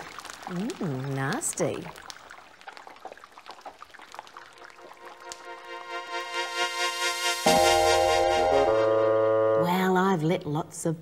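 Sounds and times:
liquid trickling: 0.0 - 7.2
foam crackling: 0.0 - 8.8
sustained music chords: 5.0 - 9.7.

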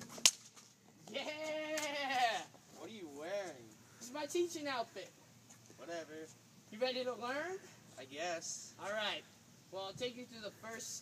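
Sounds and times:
person making bleat-like cry: 1.1 - 2.5.

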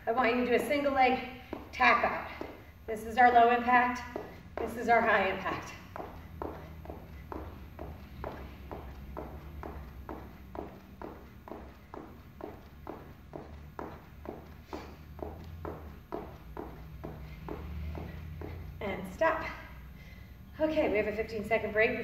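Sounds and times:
sneakers hitting rubber gym floor: 0.0 - 19.6
low steady hum: 0.0 - 22.0.

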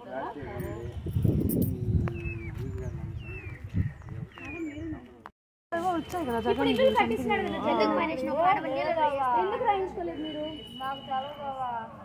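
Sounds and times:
people talking: 0.0 - 5.2, 5.8 - 12.0.

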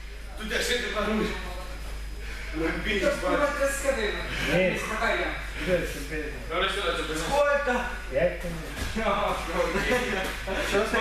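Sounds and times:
people talking: 0.1 - 11.0.

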